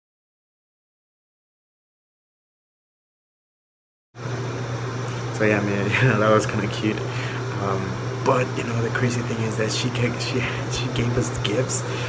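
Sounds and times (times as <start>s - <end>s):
air conditioner running: 4.2s - 12.0s.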